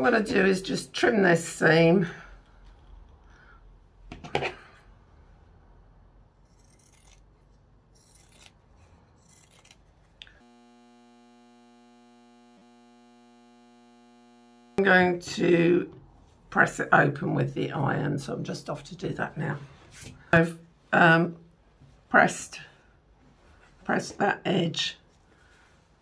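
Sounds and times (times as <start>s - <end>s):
fabric scissors snipping: 6.5s - 10.4s
faint multi-pitched hum: 10.3s - 14.8s.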